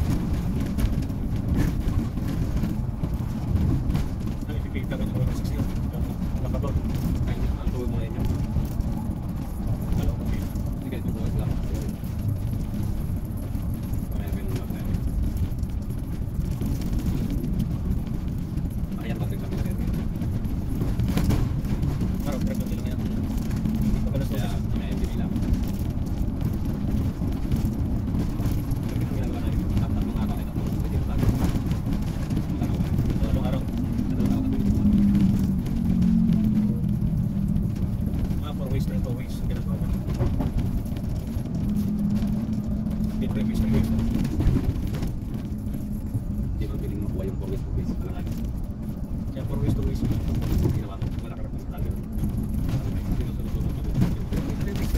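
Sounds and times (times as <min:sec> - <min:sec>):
bus engine rumble: 0:00.0 - 0:54.9.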